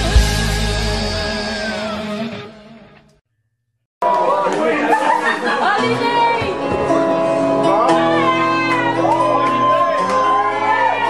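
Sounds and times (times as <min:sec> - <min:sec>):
loud crowd chatter in a hall: 0:04.0 - 0:11.0.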